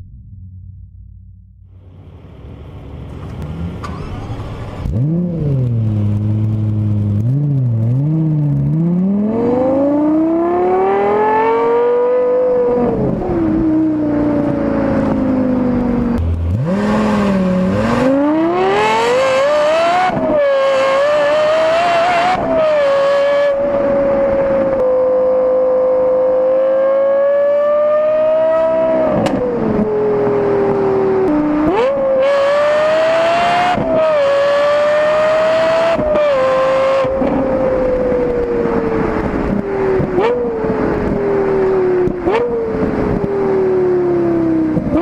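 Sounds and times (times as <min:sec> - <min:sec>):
car engine revving: 0:00.0 - 0:45.0.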